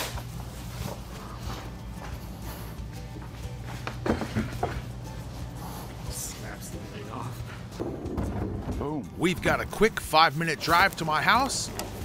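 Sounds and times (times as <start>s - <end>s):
faint footsteps: 0.3s - 6.1s.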